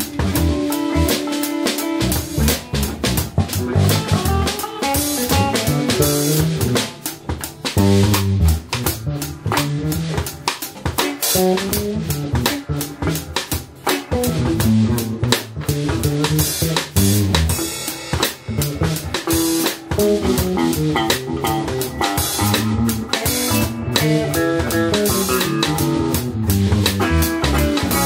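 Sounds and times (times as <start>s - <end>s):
drum kit steady beat: 0.0s - 28.0s
electric bass lines: 0.0s - 28.0s
electric guitar fills: 0.0s - 28.0s.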